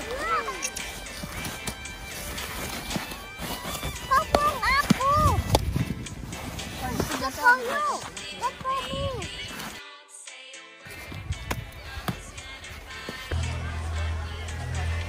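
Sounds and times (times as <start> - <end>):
children's high-pitched voices: 0.0 - 0.8, 3.9 - 5.5, 6.8 - 9.6
background music: 0.0 - 15.0.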